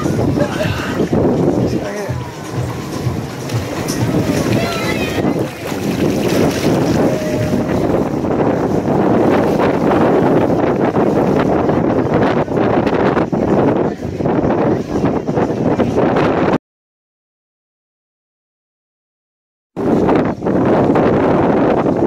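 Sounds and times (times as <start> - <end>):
water churning and splashing: 0.0 - 16.5
wind buffeting microphone: 0.0 - 16.6, 19.8 - 22.0.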